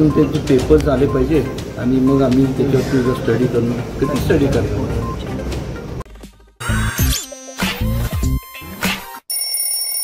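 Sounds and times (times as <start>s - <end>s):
music: 0.0s - 9.2s
high electronic ringing: 9.2s - 10.0s.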